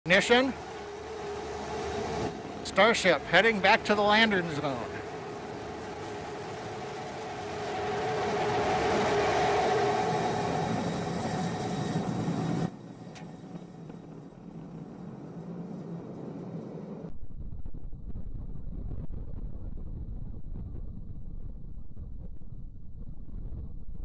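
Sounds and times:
rocket engines roaring: 0.1 - 17.2
low rumble: 0.1 - 24.0.

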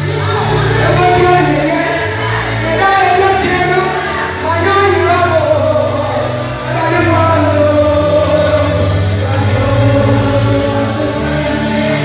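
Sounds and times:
group singing gospel: 0.0 - 12.0
steady bass line: 0.0 - 12.0.

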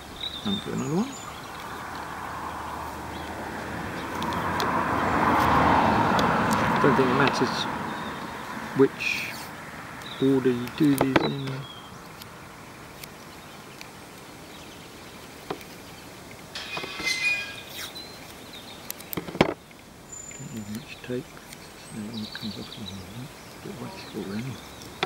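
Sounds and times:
background hiss: 6.2 - 25.0.

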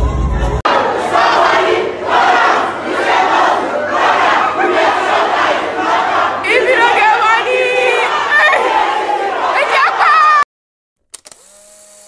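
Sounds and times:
loud crowd voices: 0.2 - 10.4
held shout: 6.5 - 10.5.

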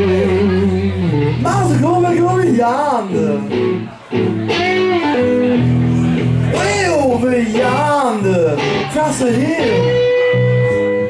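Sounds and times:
electric guitars playing blues: 0.0 - 11.0.

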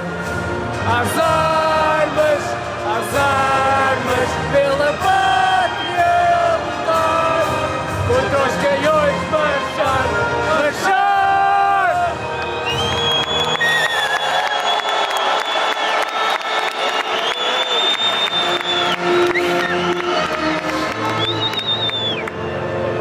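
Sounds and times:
anthem over stadium loudspeakers: 0.0 - 23.0
crowd singing and cheering: 0.0 - 23.0.

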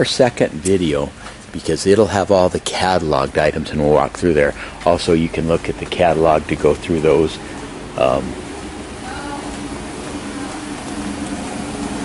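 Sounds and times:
constant rushing noise: 0.0 - 12.0
low two-tone machine hum: 0.0 - 12.0.

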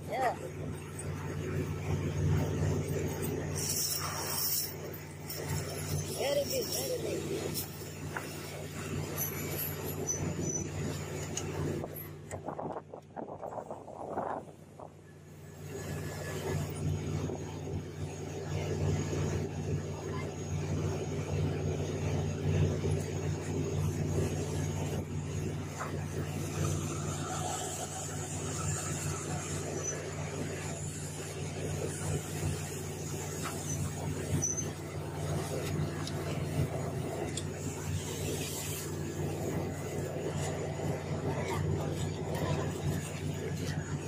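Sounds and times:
boat engine humming: 0.0 - 44.0
wind: 0.0 - 44.0.

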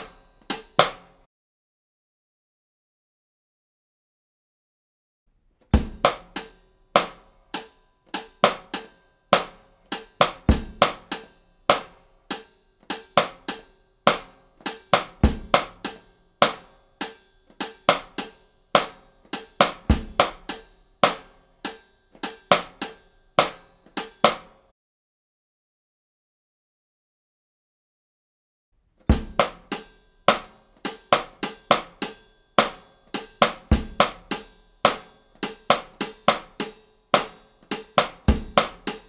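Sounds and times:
drum kit playing slow beat: 0.0 - 1.1, 5.8 - 24.5, 29.1 - 39.0.

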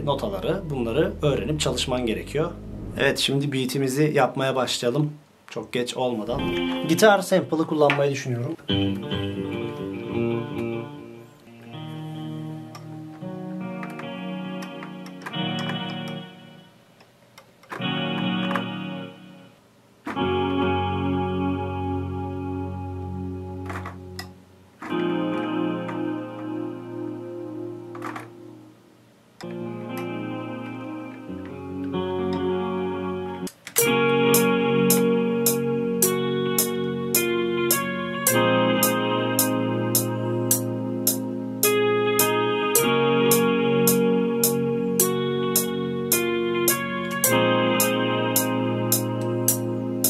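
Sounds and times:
sampled guitar phrases: 0.0 - 4.0, 6.2 - 16.9, 17.7 - 50.0.

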